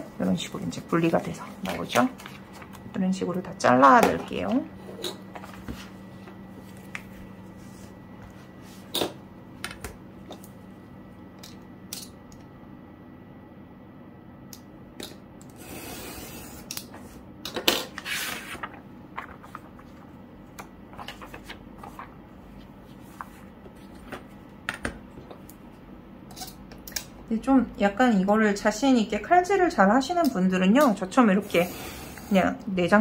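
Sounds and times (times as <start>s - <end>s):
paper rustling: 18.0s - 20.1s, 20.9s - 24.3s.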